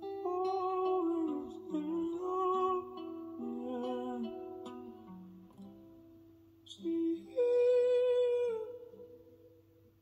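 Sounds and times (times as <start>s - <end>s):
person humming a melody: 0.0s - 5.4s, 6.7s - 9.2s.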